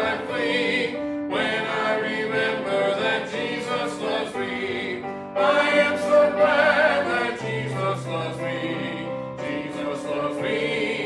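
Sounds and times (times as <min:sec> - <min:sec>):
group singing a hymn: 0:00.0 - 0:11.0.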